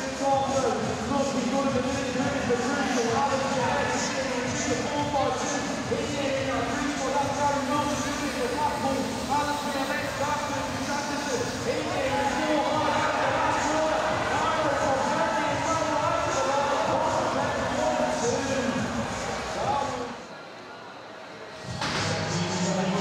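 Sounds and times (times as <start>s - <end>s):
arena noise: 0.0s - 23.0s.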